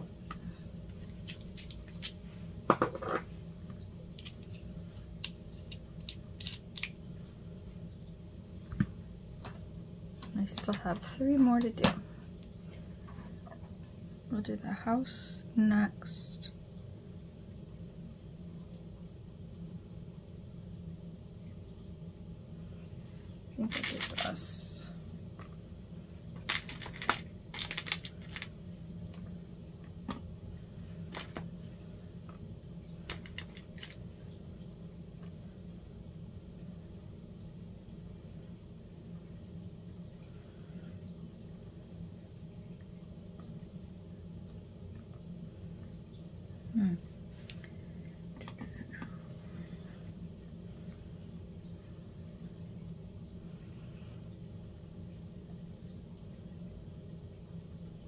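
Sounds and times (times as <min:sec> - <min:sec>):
low hum: 0:00.0 - 0:58.0
beads clicking and rattling: 0:26.5 - 0:28.5.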